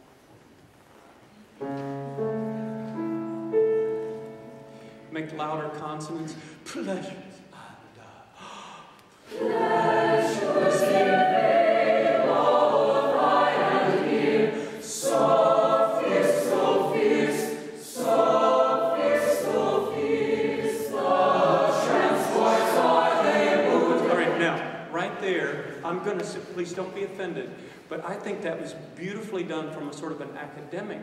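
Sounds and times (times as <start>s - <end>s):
mixed choir singing in harmony: 9.2s - 24.9s.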